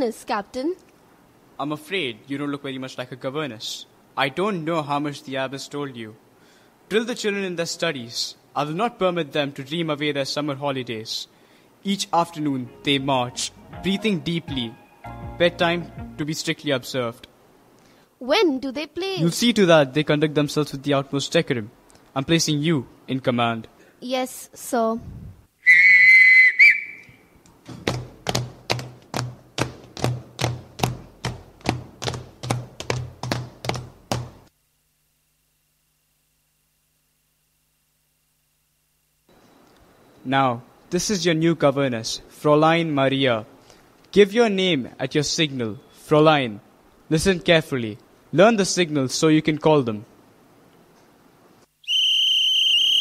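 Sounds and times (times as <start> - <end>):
whistle blast: 25.6 - 27.3, 51.8 - 53.0
feet marching on wooden stage: 27.6 - 34.5.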